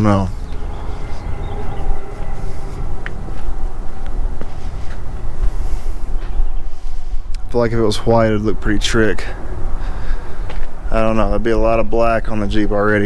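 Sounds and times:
faint mechanical hum: 0.0s - 13.0s
wind rumbling on microphone: 0.0s - 13.0s.

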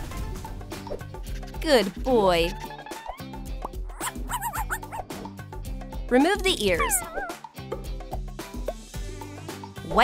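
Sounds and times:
dog yipping: 3.9s - 5.1s, 6.8s - 7.4s
background music with beat: 7.5s - 9.8s.

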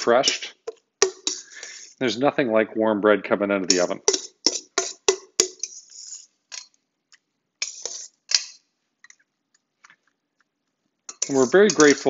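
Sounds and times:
metal tongs clicking on steel bowl: 11.1s - 12.0s.

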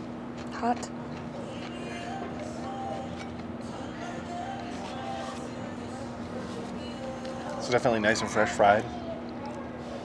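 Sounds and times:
low room hum: 0.0s - 10.0s
soft background music: 1.1s - 9.3s
faint chatter: 5.0s - 10.0s.

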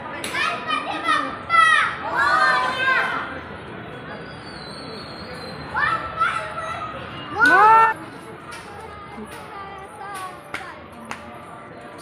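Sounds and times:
children calling out: 5.7s - 8.0s.

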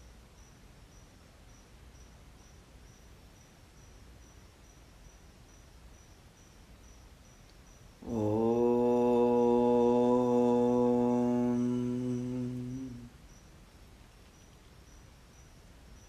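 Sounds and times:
faint cricket chirping: 0.0s - 16.0s
man chanting low syllable: 8.0s - 13.2s.

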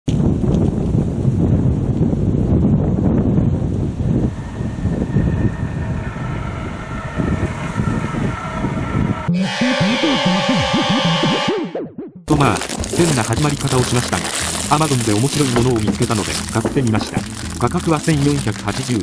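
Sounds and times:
wind buffeting microphone: 0.1s - 9.3s
music sting with sliding low tones: 4.1s - 19.0s.

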